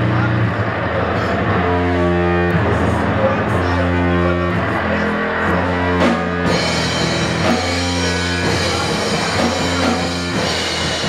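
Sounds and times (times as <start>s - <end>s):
punk bass and drums: 0.0s - 11.0s.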